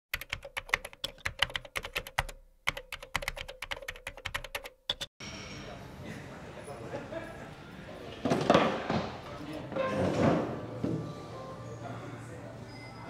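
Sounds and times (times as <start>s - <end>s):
keyboard typing clicks: 0.1s - 5.1s.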